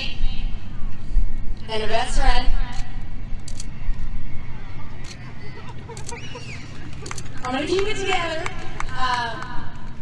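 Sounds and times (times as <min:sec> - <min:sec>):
faint crowd voices: 0:00.0 - 0:10.0.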